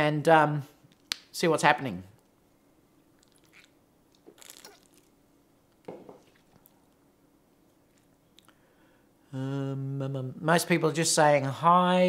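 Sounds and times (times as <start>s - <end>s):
man swallowing: 3.2s - 5.1s.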